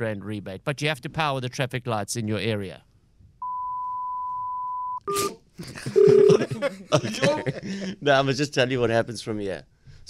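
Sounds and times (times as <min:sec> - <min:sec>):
high electronic beep: 0:03.4 - 0:05.4.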